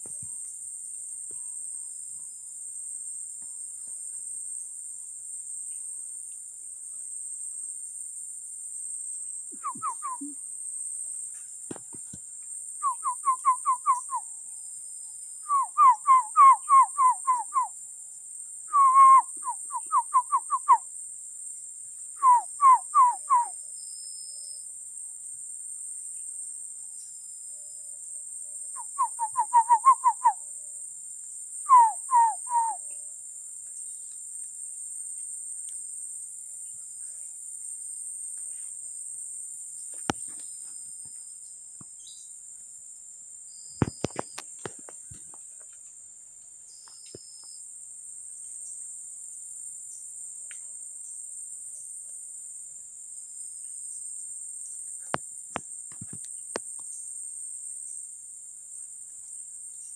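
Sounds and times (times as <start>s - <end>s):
high-pitched insect drone: 0.0s - 42.8s, 46.7s - 59.9s.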